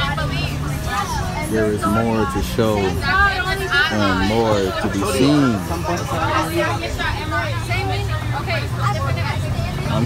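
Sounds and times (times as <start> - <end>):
bus engine and road noise: 0.0 - 10.0
passengers chatting: 0.0 - 10.0.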